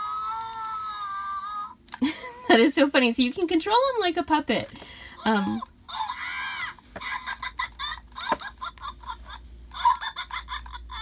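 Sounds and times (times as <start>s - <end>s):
electronic toy cackling and chattering: 5.4s - 11.0s.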